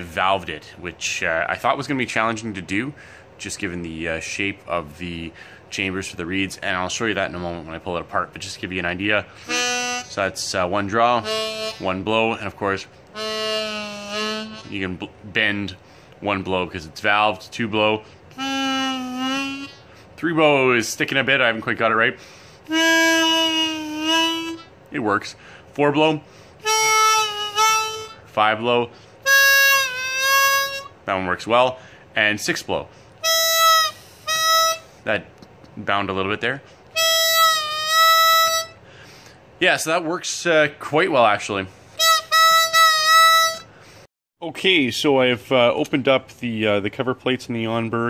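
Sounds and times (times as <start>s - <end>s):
harmonica blow note: 9.3s - 12.4s, 13.1s - 15.0s, 18.3s - 20.0s, 22.6s - 24.8s, 26.6s - 28.4s, 29.2s - 31.0s, 33.2s - 35.0s, 36.9s - 39.3s, 42.0s - 43.8s.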